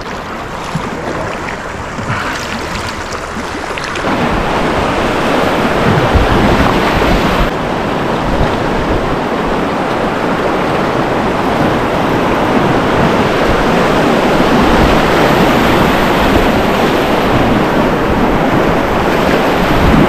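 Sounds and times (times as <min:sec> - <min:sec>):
whitewater rapids rushing: 0:00.0 - 0:20.0
wind buffeting microphone: 0:00.0 - 0:20.0.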